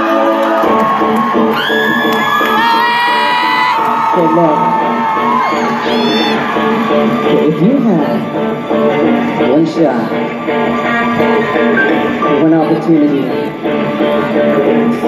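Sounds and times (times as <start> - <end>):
audience whooping and screaming: 0.0 - 8.7
live band playing chords: 0.0 - 15.0.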